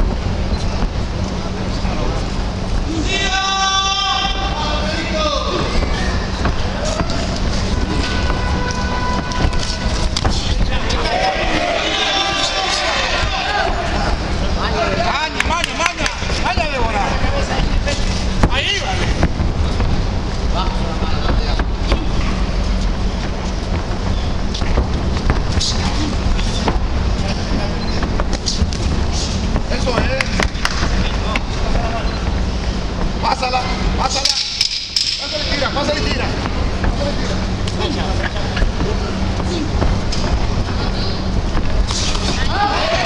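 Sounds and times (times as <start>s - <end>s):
constant low rumble: 0.0s - 43.0s
distant shouts: 2.8s - 19.2s, 41.9s - 43.0s.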